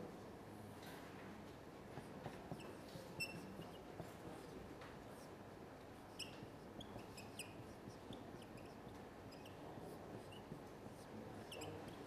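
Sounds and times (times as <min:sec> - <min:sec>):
faint room hum: 0:00.0 - 0:12.0
marker squeaking on whiteboard: 0:02.5 - 0:04.5, 0:06.0 - 0:12.0.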